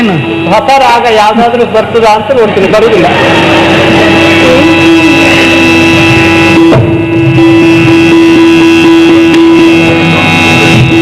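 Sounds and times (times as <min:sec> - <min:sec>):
loud drone on one note: 0:00.0 - 0:11.0.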